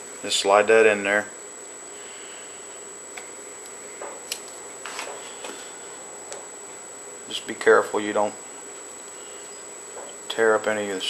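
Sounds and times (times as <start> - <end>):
steady low hiss: 0.0 - 11.0
thin high whine: 0.0 - 11.0.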